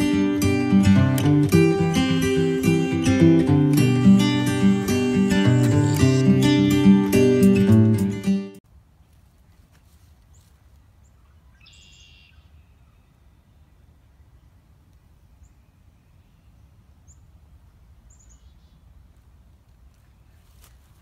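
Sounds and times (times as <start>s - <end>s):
buzzy bird call: 1.4s - 7.1s
high bird chirps: 1.5s - 7.0s, 11.1s - 13.1s.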